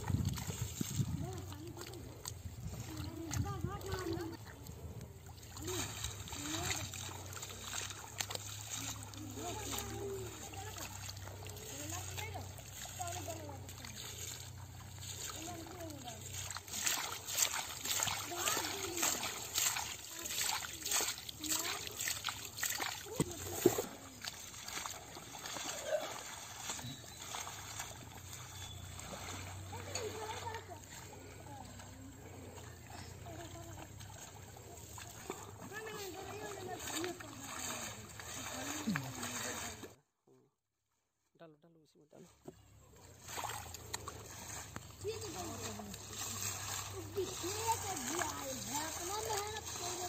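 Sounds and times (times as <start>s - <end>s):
hands splashing through wet mud: 0.0s - 40.0s, 43.1s - 50.0s.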